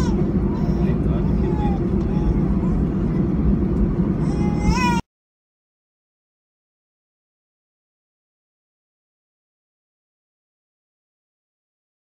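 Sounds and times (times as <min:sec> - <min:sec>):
airliner cabin rumble: 0:00.0 - 0:05.0
faint voices in cabin: 0:00.0 - 0:05.0.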